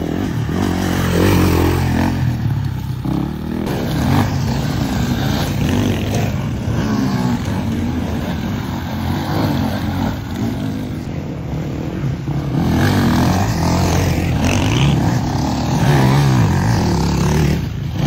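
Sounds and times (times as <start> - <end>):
dirt bike engines revving: 0.0 - 18.0.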